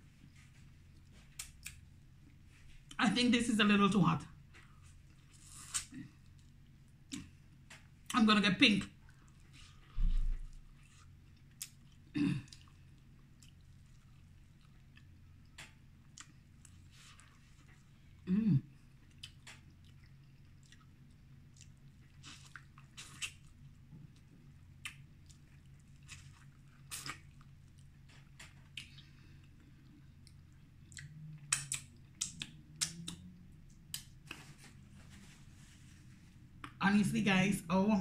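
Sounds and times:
person chewing: 0.2 - 3.0, 4.6 - 7.9, 9.0 - 36.0.

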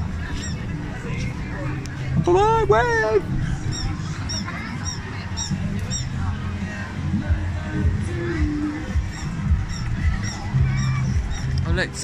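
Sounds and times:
crowd and street noise: 0.0 - 12.0.

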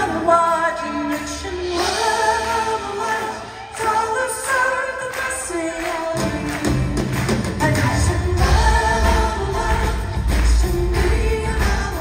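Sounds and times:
people singing in harmony: 0.0 - 12.0.

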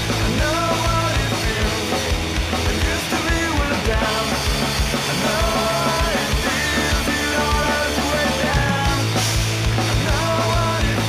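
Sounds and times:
punk rock band playing: 0.0 - 11.0.

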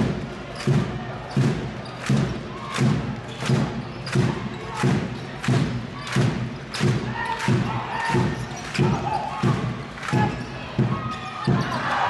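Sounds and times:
drum beaten at steady pace: 0.0 - 11.9
crowd chanting: 4.2 - 12.0.

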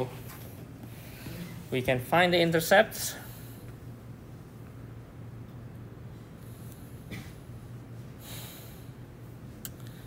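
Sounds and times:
person breathing close to microphone: 8.2 - 9.0.

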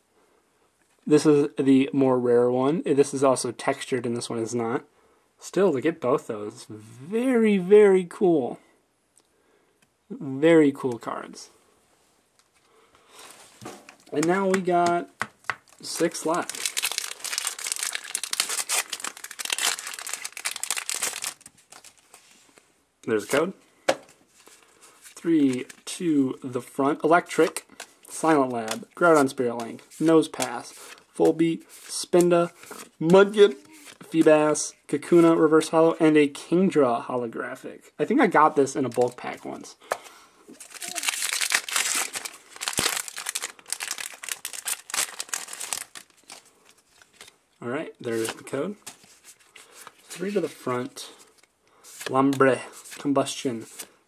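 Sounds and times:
foil wrapper crinkling: 13.8 - 22.3, 40.5 - 47.4.

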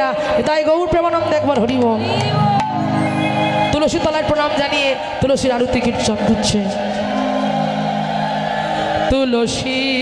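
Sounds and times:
harmonium chord: 2.0 - 4.4, 6.4 - 9.5.

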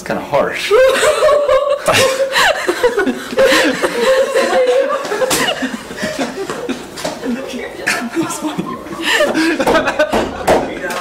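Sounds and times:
group of people laughing: 0.7 - 10.9.

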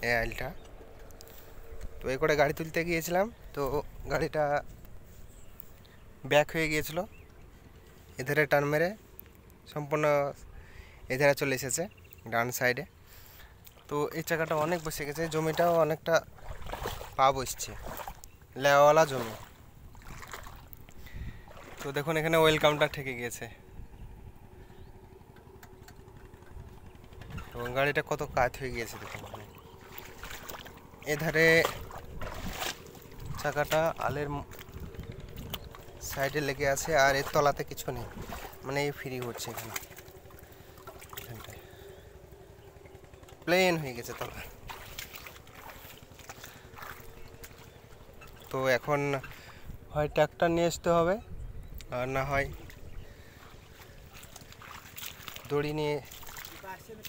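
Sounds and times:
faint clicks: 0.6 - 2.1, 9.1 - 9.6
tractor diesel engine running: 24.1 - 27.4.

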